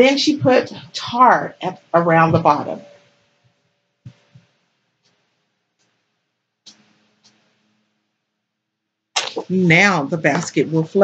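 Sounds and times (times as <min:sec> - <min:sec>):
soft low thumps: 0:02.2 - 0:02.8.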